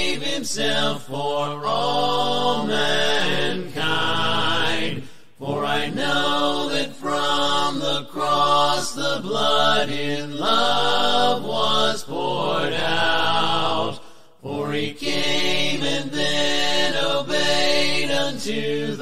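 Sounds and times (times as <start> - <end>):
a cappella hymn singing: 0.0 - 19.0.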